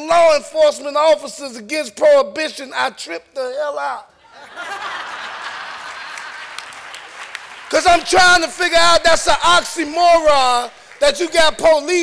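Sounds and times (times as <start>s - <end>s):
audience applauding: 4.6s - 12.0s.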